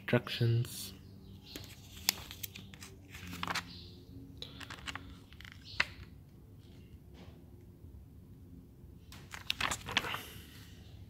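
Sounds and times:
paper pages rustling: 0:01.5 - 0:06.9, 0:09.2 - 0:10.7.

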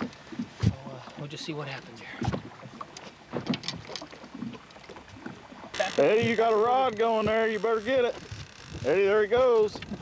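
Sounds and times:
knocks and clatter in a boat: 0:00.0 - 0:10.0
water: 0:00.0 - 0:10.0
wind noise: 0:08.1 - 0:10.0.

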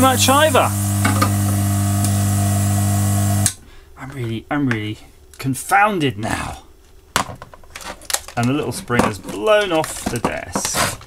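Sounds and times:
hot air gun humming: 0:00.0 - 0:03.6.

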